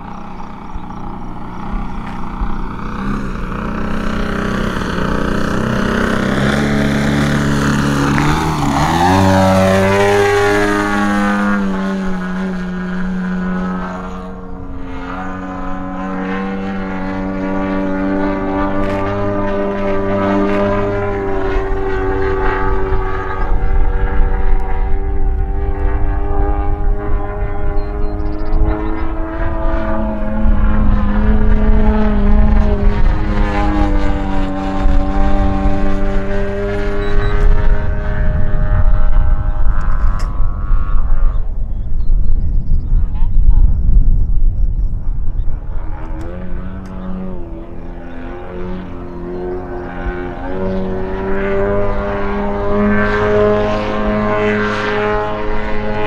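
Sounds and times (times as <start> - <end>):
model airplane engine droning: 0.0 - 56.0
low rumble: 18.6 - 52.8.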